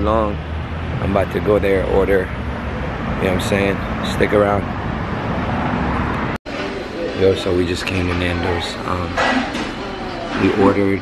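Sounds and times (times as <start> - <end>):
city street traffic: 0.0 - 11.0.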